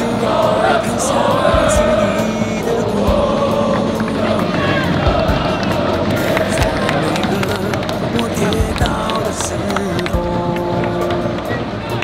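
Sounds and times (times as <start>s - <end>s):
music: 0.0s - 12.0s
stadium crowd singing and cheering: 0.0s - 12.0s.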